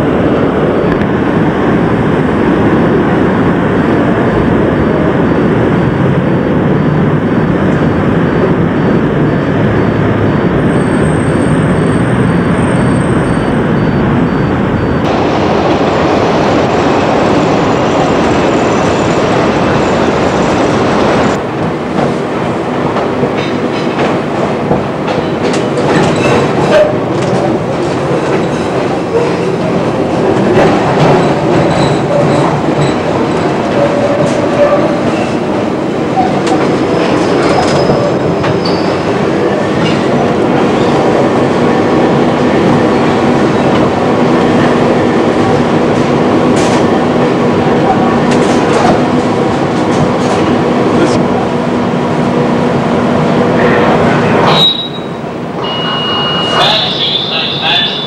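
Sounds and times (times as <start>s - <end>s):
train rumble: 0.0s - 58.0s
wheel squeals: 37.4s - 39.1s.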